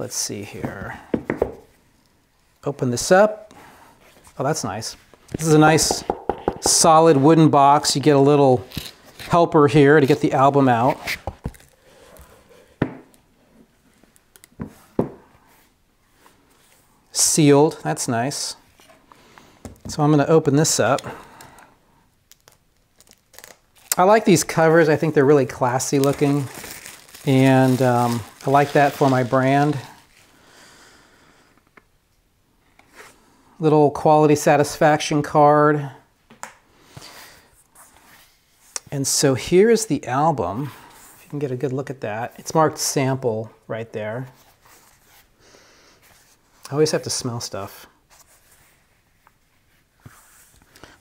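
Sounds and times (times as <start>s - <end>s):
rustling of photo album: 25.7s - 30.4s.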